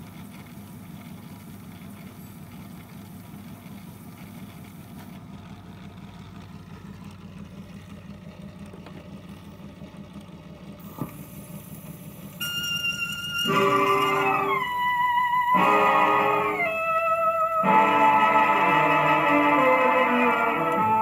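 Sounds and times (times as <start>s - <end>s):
phonograph low hum: 0.0s - 21.0s
orchestra playing: 12.4s - 21.0s.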